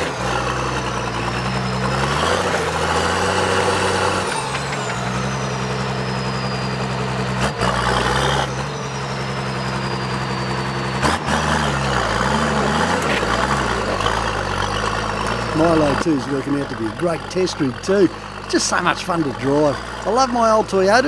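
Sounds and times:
engine running at low revs: 0:00.0 - 0:21.0.

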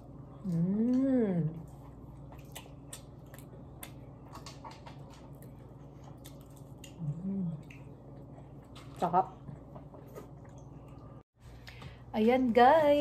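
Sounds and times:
person humming: 0:00.4 - 0:01.6
person chewing crunchy snack: 0:01.8 - 0:09.0.

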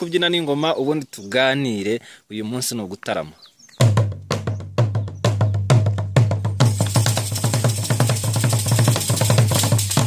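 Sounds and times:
drum beaten with sticks: 0:03.8 - 0:10.0.

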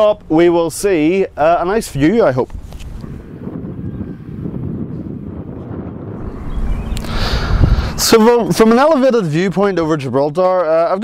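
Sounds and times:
wind buffeting microphone: 0:00.0 - 0:10.6.

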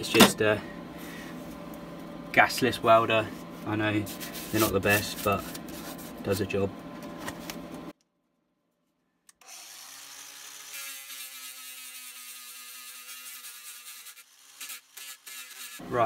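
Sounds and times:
angle grinder sanding steel: 0:09.4 - 0:15.9.

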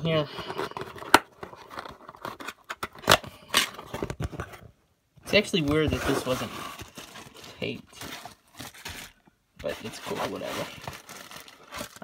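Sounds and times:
cardboard flaps scraping and rustling: 0:05.6 - 0:12.0.

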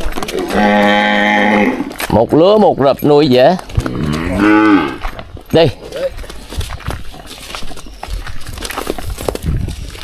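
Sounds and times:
cattle hooves on sandy dirt: 0:00.0 - 0:10.0.

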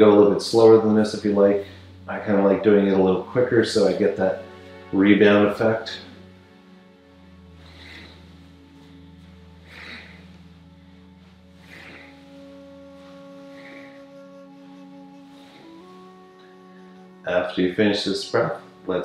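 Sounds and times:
faint soft sounds: 0:00.0 - 0:19.0
soft sustained background music: 0:00.0 - 0:19.0.

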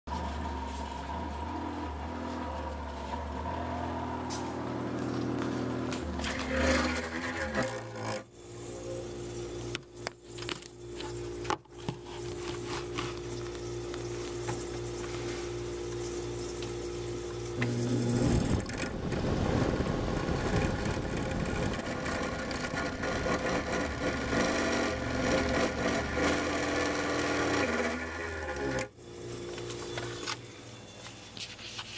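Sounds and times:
refrigerator fan humming: 0:00.1 - 0:31.9.

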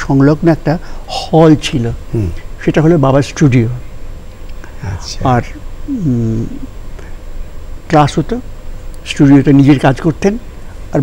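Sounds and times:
elderly man speaking: 0:00.0 - 0:03.8, 0:04.7 - 0:06.7, 0:07.9 - 0:10.4.

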